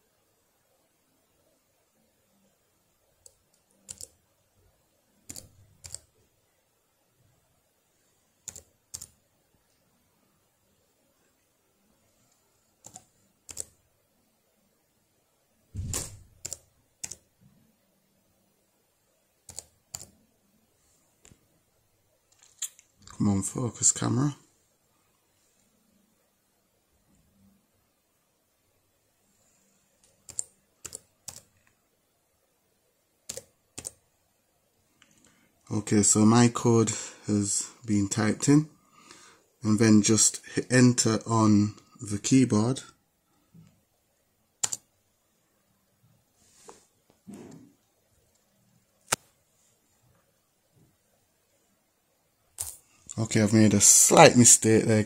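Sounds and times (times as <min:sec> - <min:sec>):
computer keyboard keystrokes: 0:03.2 - 0:04.2, 0:05.3 - 0:06.1, 0:08.4 - 0:09.2, 0:12.8 - 0:13.8, 0:15.8 - 0:17.3, 0:19.5 - 0:20.2, 0:30.0 - 0:31.7, 0:33.3 - 0:34.0, 0:44.6 - 0:44.8.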